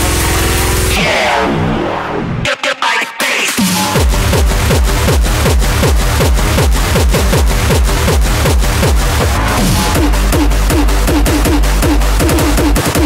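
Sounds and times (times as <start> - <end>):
dense electronic layers: 0.0 - 2.5, 3.6 - 13.0
fast kick drum: 3.6 - 13.0.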